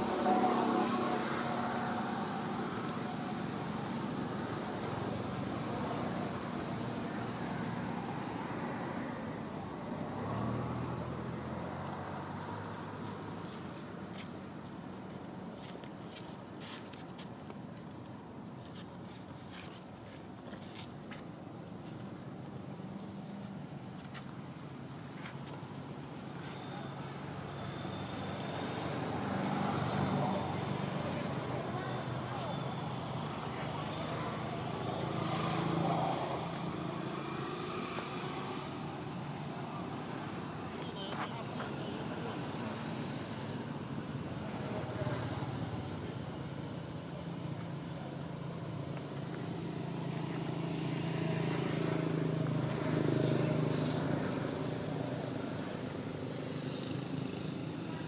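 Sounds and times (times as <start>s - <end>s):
people talking: 29.9s - 37.2s, 39.1s - 43.0s
high falling squeak: 44.8s - 46.6s.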